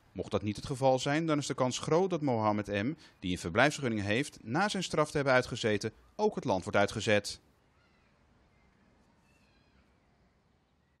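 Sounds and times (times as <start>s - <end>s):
faint high chirps: 7.7s - 11.0s.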